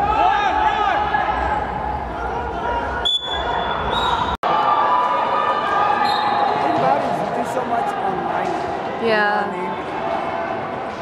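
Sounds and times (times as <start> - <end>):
players calling out in echoing hall: 0.0 - 11.0.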